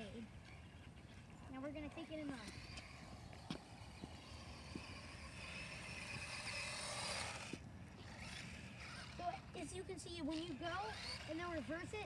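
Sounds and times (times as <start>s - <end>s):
toy car motor whirring: 1.5s - 12.0s.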